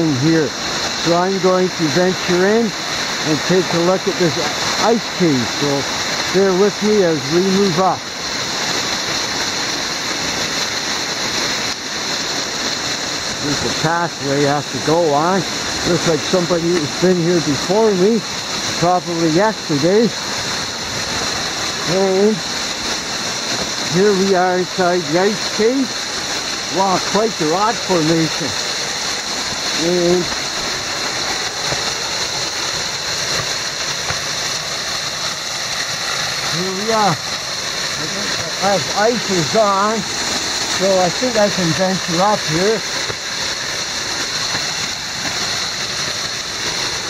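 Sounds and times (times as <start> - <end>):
waterfall rushing: 0.0 - 47.0.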